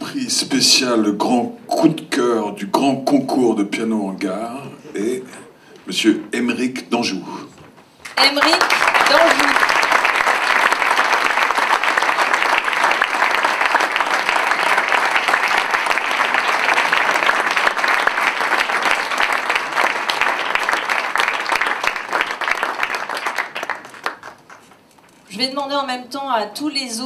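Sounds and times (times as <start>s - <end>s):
audience applauding: 8.1s - 24.9s.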